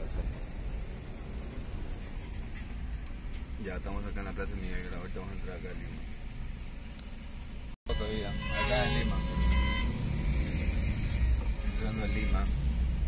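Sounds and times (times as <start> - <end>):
car engine rumble: 0.0 - 13.0
city traffic: 0.0 - 13.0.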